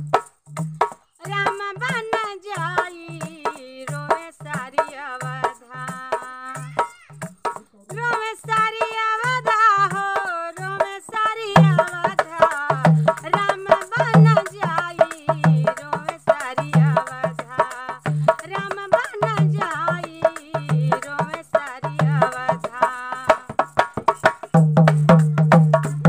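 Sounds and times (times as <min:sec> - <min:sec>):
hand drum steady beat: 0:00.0 - 0:26.0
woman singing devotional song: 0:01.2 - 0:23.9.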